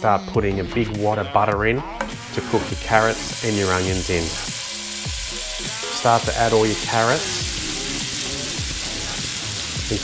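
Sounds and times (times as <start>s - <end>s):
carrots sizzling in oil: 2.0s - 10.0s.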